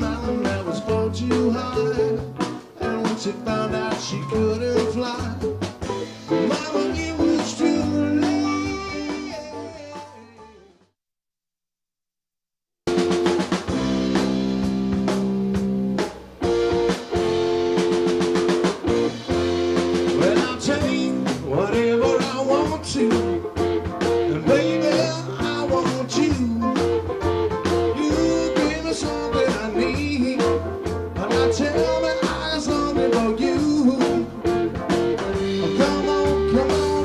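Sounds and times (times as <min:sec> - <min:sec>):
live rock band music: 0:00.0 - 0:10.8, 0:12.9 - 0:37.0.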